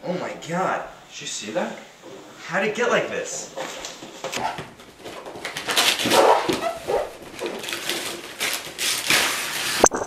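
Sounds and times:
person straining: 0.0 - 0.4
wrapping paper crinkling: 3.6 - 9.9.

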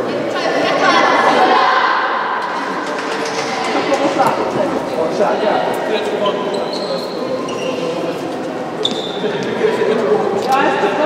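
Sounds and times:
chatter of voices in hall: 0.0 - 11.0
brief high squeak: 6.5 - 7.9.

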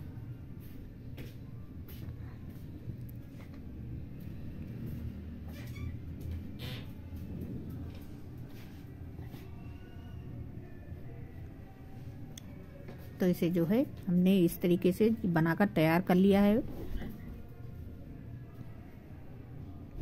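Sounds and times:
steady low rumble: 6.0 - 12.7.

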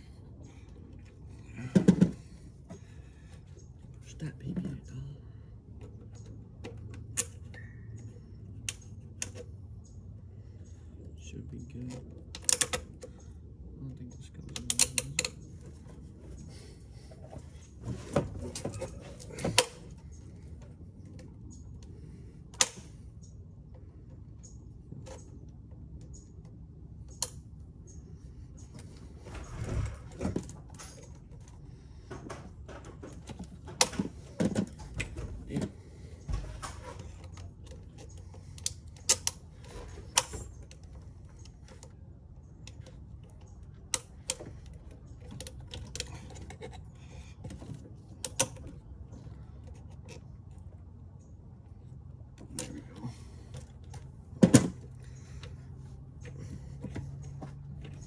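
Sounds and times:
clicks and rattles of tools: 11.8 - 13.3, 14.4 - 16.5, 28.6 - 51.3.

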